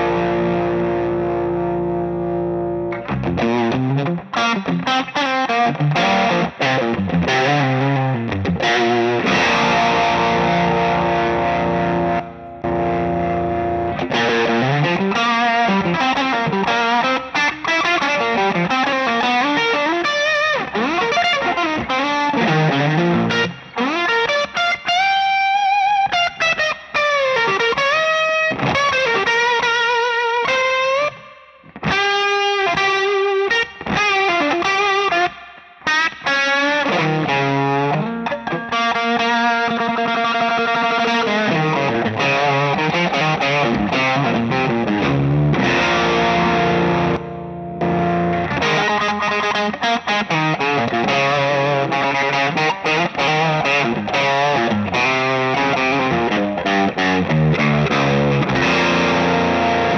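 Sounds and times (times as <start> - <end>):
overdriven electric guitar: 0.0 - 59.9.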